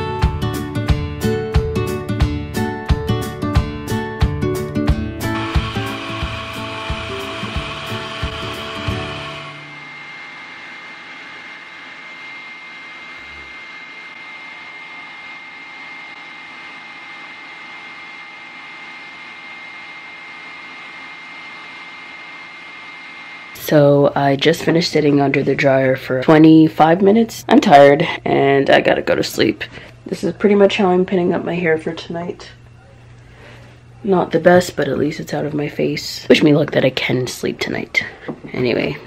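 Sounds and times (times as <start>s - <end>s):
acoustic guitar music: 2.0s - 9.6s
hair dryer whirring: 5.2s - 25.4s.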